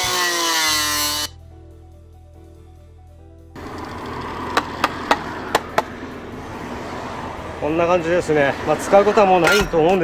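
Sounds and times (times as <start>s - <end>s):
sharp knocks: 4.5s - 5.9s.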